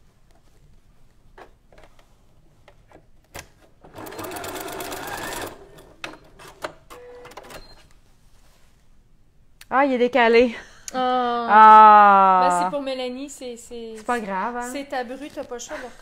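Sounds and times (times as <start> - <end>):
sewing machine stitching: 3.8 - 7.7.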